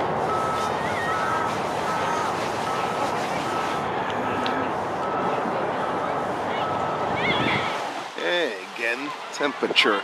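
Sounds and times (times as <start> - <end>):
vehicle reversing alarm beeping: 0.0 - 7.8
outdoor background noise: 0.0 - 10.0.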